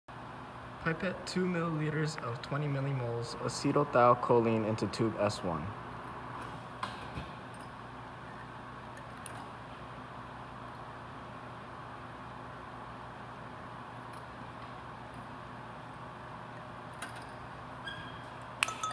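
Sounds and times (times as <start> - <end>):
steady low hum: 0.1 - 18.9.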